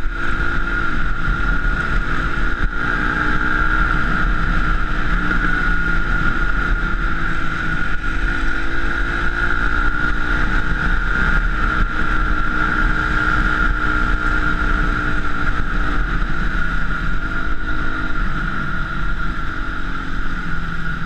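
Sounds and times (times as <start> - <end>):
dirt bike engine running: 0.0 - 21.0
high-pitched whine: 0.0 - 21.0.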